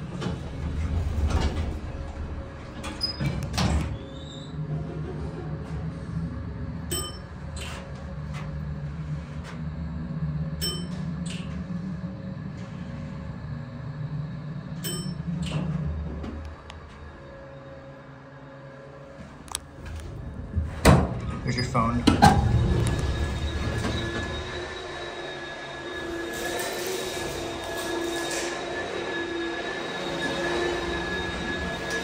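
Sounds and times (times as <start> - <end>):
elevator low hum: 0.0 - 32.0.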